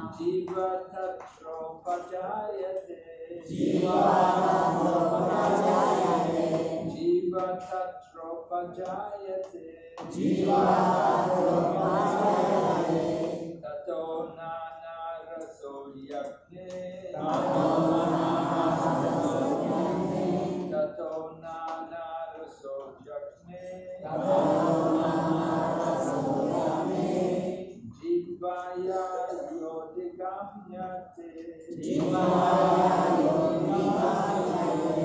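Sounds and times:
single voice reciting: 0:00.0 - 0:35.0
group chanting in unison: 0:03.4 - 0:07.1, 0:10.0 - 0:14.2, 0:16.7 - 0:21.2, 0:23.9 - 0:28.0, 0:31.7 - 0:35.0.

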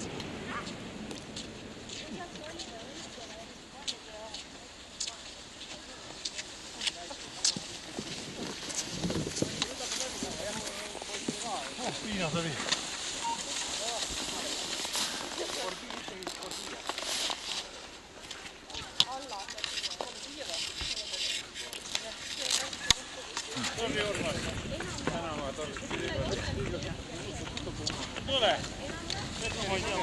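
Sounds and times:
people chattering: 0:01.8 - 0:30.0
skis scraping on snow: 0:05.6 - 0:26.6, 0:27.2 - 0:30.0.

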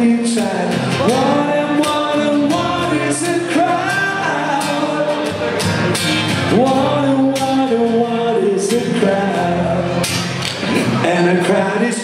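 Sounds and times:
person singing: 0:00.0 - 0:05.9, 0:06.5 - 0:12.0
live rock band playing: 0:00.0 - 0:12.0.

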